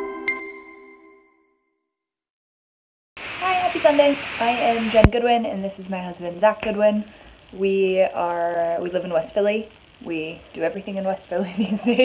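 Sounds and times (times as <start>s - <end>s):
bright chime: 0.0s - 1.4s
logo jingle: 0.0s - 1.4s.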